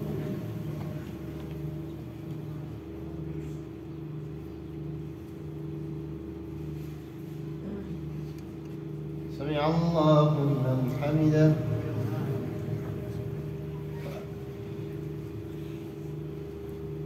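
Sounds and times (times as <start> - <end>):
low pulsing hum: 0.0 - 17.0.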